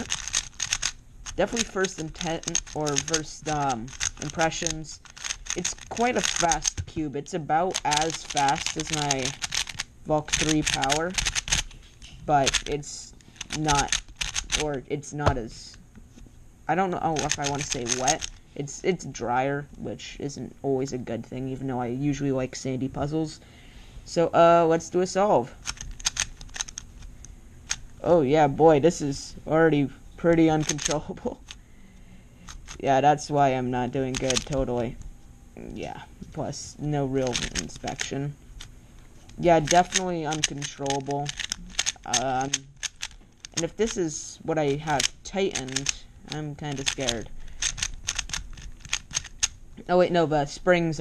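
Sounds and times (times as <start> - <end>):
speed cube clicking: 0.0 - 11.7, 12.4 - 14.8, 16.9 - 18.4, 25.6 - 26.8, 30.4 - 31.6, 32.5 - 32.9, 34.0 - 34.7, 37.2 - 38.2, 39.4 - 49.6.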